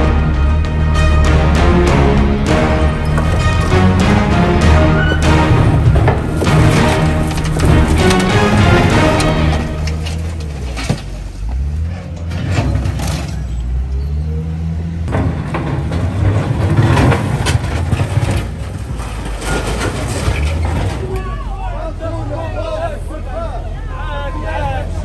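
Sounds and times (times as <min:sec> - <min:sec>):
diesel engine revving: 0:00.0 - 0:21.1
rubble and sheet metal crashing: 0:04.9 - 0:11.1, 0:15.1 - 0:21.2
voices: 0:20.8 - 0:25.0.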